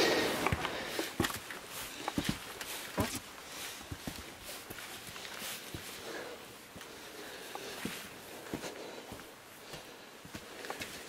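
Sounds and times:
footsteps on stone: 0:00.0 - 0:11.0.

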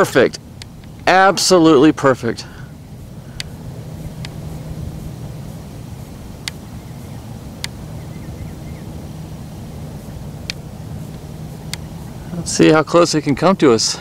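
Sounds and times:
faint hum: 0:00.0 - 0:14.0
low outdoor rumble: 0:00.0 - 0:14.0
short sharp ticks: 0:06.4 - 0:06.6.

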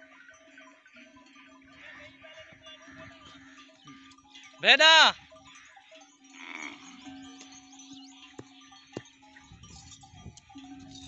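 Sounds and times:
sheep and goats bleating: 0:01.6 - 0:07.6.

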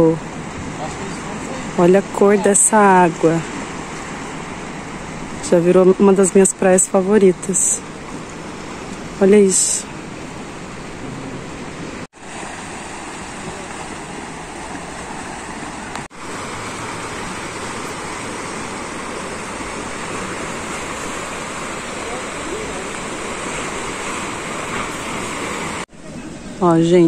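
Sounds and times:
sea surf washing over rocks: 0:00.0 - 0:27.0
wind: 0:00.0 - 0:27.0.

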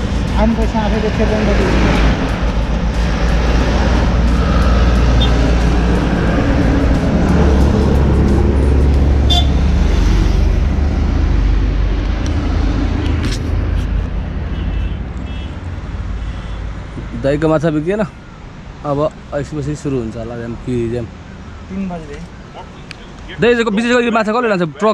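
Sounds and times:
highway traffic passing: 0:00.0 - 0:24.9.

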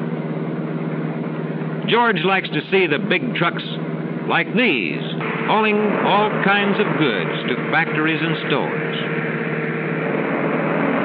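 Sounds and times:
soundtrack hiss: 0:04.4 - 0:11.0
steady drone with held tones: 0:04.5 - 0:11.0.

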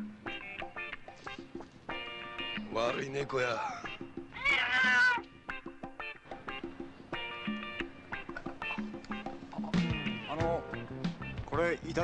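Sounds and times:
background music: 0:00.0 - 0:12.0
cat meowing: 0:03.8 - 0:05.3.

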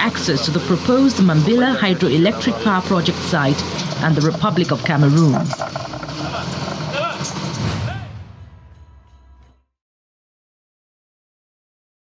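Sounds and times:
excavator engine running: 0:00.0 - 0:07.9
faint voices: 0:00.0 - 0:08.1.

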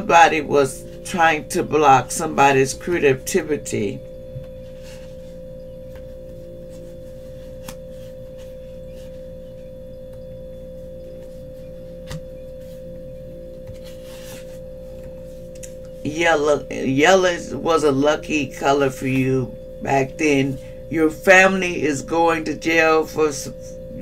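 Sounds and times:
steady humming tone: 0:00.0 - 0:24.0
paper rustling: 0:13.6 - 0:15.5.

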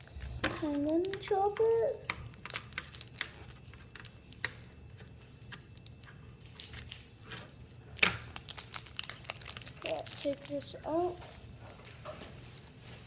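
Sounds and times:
foil wrapper crinkling: 0:00.0 - 0:01.5, 0:02.2 - 0:13.0
loud foil crackle: 0:02.2 - 0:07.3, 0:08.0 - 0:13.0.

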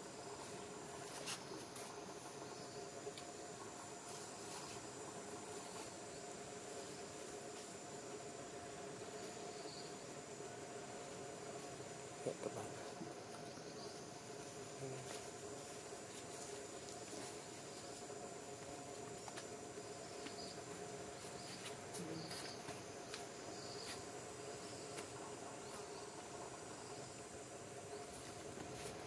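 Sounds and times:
insect chorus buzzing: 0:00.0 - 0:29.0
low steady hum: 0:00.0 - 0:29.0.

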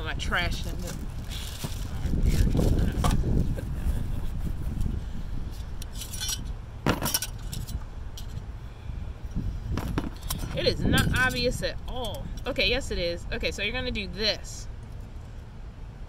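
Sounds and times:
wind rumbling on microphone: 0:00.0 - 0:13.9
metal pieces clinking: 0:05.9 - 0:08.4.

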